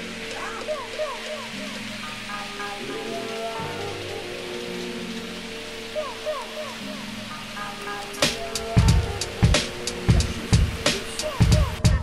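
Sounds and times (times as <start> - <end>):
hip-hop instrumental music: 0.0 - 12.0
steady hiss: 0.0 - 12.0.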